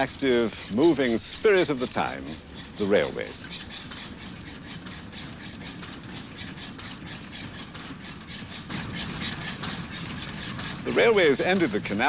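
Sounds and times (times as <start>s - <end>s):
steam locomotive running: 0.0s - 12.0s.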